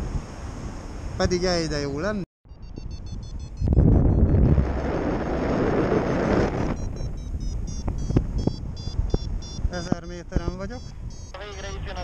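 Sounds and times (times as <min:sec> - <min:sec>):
wind rushing over microphone: 0:00.0 - 0:01.6, 0:02.6 - 0:12.0
variometer beeping: 0:02.5 - 0:04.6, 0:06.6 - 0:11.7.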